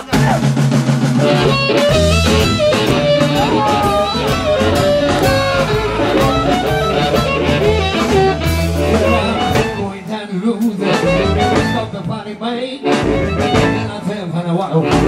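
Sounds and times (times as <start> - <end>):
drum kit groove: 0.0 - 15.0
harmonica wailing: 1.2 - 10.0, 10.8 - 12.0, 12.8 - 14.0
person singing: 1.8 - 15.0.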